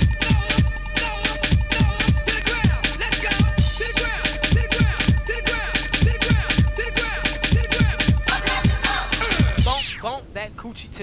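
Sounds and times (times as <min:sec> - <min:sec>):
hip hop beat with kick drum: 0:00.0 - 0:10.0
turntable scratches: 0:00.0 - 0:10.2.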